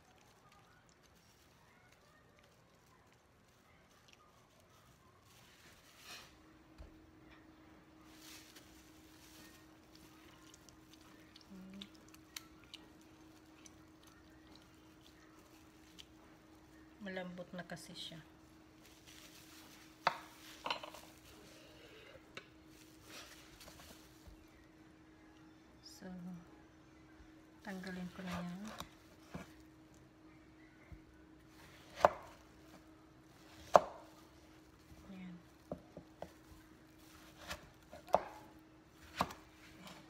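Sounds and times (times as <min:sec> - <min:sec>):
faint steady hum: 0:00.0 - 0:40.0
knife slicing melon: 0:31.6 - 0:32.4, 0:33.4 - 0:34.2, 0:37.0 - 0:40.0.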